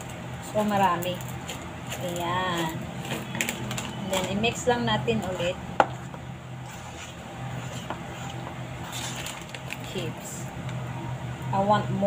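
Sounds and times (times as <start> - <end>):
metal spoon stirring dough in bowl: 0.0 - 10.4
low background hum: 0.0 - 12.0.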